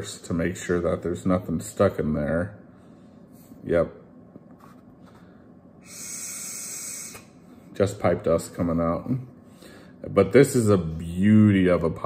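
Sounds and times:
breath blown through pipe stem: 5.8 - 7.3.

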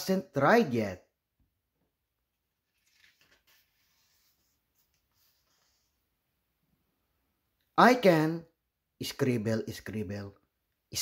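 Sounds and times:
book page turning: 2.4 - 6.0.

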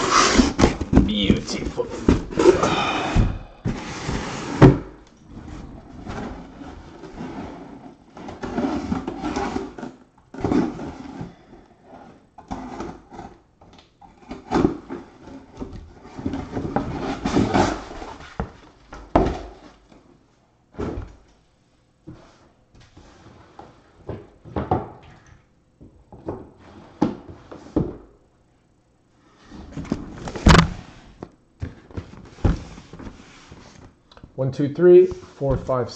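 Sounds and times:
cardboard scraping: 0.0 - 13.4, 14.2 - 18.6
cardboard boxes knocking and thudding: 0.2 - 7.4, 14.2 - 19.9, 24.0 - 25.1, 29.7 - 31.0, 31.6 - 33.2.

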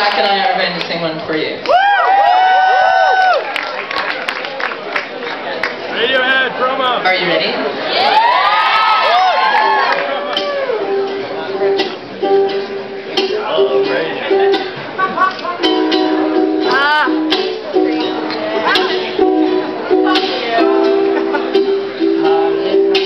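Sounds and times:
audience whooping and calling out: 1.6 - 4.0, 7.8 - 11.1
ukulele plucked notes and chords: 9.7 - 23.0.

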